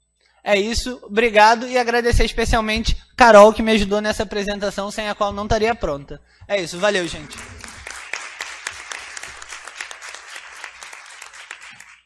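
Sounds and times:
audience applauding: 6.7s - 12.0s.

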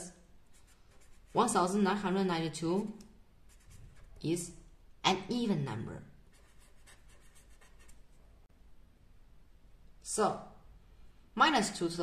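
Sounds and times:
marker writing on paper: 0.5s - 1.6s, 3.5s - 4.2s, 6.3s - 8.0s.

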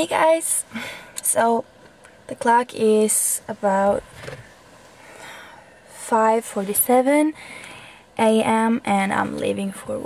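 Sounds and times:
short breath: 0.7s - 1.2s, 5.0s - 5.8s, 7.4s - 8.1s.

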